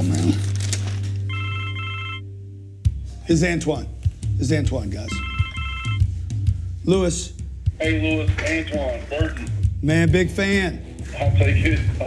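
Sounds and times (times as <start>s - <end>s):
low music bed: 0.0s - 12.0s
cell phone ringtone: 1.3s - 2.4s, 5.1s - 6.1s.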